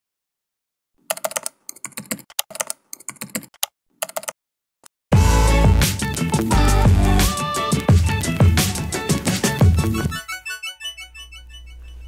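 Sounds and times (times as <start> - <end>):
typing on computer keyboard: 1.1 - 4.4.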